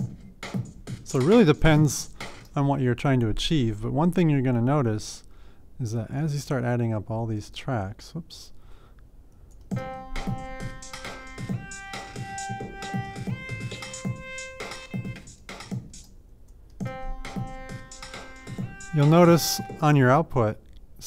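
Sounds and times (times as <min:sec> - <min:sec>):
electronic drum loop: 0:00.0 - 0:02.8, 0:09.7 - 0:16.1, 0:16.8 - 0:20.1
synthesizer lead melody: 0:09.8 - 0:16.0, 0:16.8 - 0:20.2.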